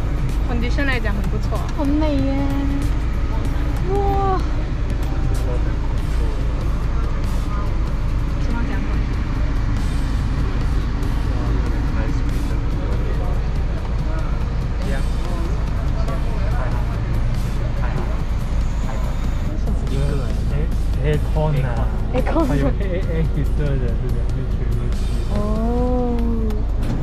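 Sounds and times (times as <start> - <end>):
background music: 0.0 - 27.0
car idling heard from inside: 0.0 - 27.0.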